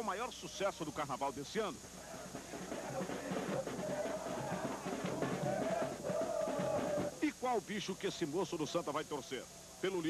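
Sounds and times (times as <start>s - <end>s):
drums: 1.5s - 8.0s
crowd singing: 2.0s - 7.2s.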